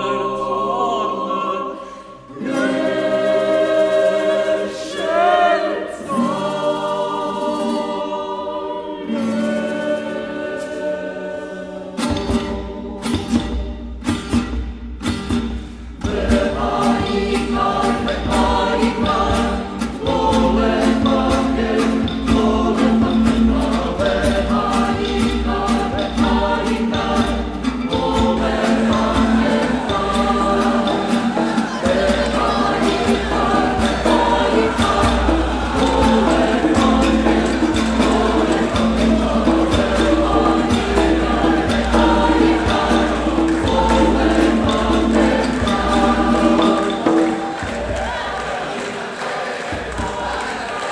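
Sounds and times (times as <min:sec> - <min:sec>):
choir singing: 0:00.0 - 0:13.8, 0:16.0 - 0:50.9
steady beat: 0:16.1 - 0:50.9.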